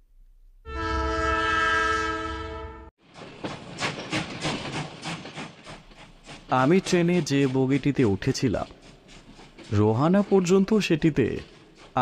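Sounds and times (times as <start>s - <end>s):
train horn: 0.7s - 2.9s
train wheels clattering over rail joints: 3.0s - 12.0s.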